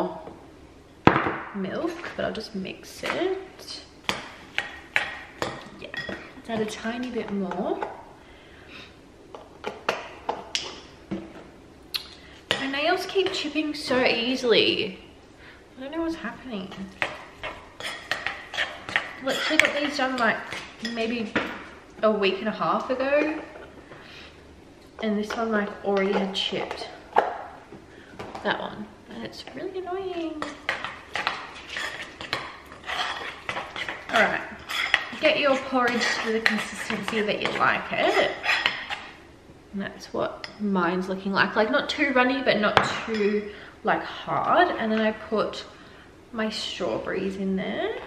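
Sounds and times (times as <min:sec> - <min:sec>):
spoon scraping a bowl: 0:16.7 - 0:21.1, 0:30.3 - 0:39.2.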